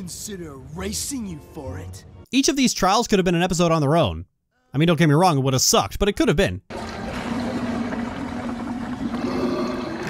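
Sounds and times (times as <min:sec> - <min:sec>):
liquid bubbling and gurgling: 0:06.7 - 0:10.0.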